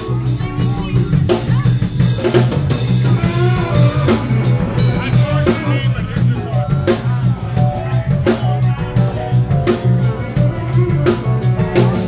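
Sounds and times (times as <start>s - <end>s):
drum kit busy beat: 0.0s - 12.0s
heavy driving bass line: 0.0s - 12.0s
jazz fusion band playing: 0.0s - 12.0s.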